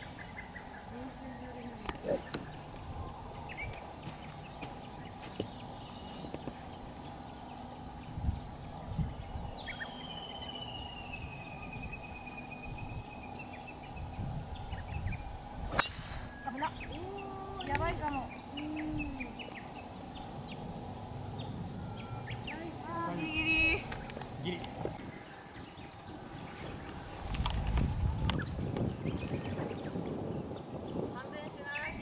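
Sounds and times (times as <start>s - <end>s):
golf driver striking ball: 15.7s - 16.4s
voices reacting: 22.4s - 24.9s.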